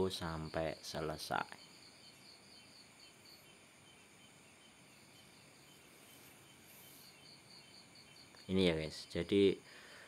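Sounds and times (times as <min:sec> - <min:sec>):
crickets chirping: 0:00.0 - 0:10.0
soft background hiss: 0:00.0 - 0:10.0.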